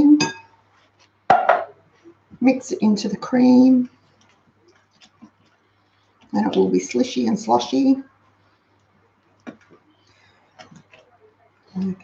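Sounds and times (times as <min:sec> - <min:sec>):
metal knocking on glass bowl: 0:01.3 - 0:01.8.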